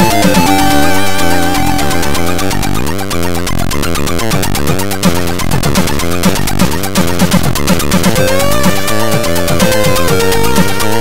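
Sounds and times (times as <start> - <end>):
rising pitch sweep: 0.0 - 4.0
chiptune music: 0.0 - 11.0.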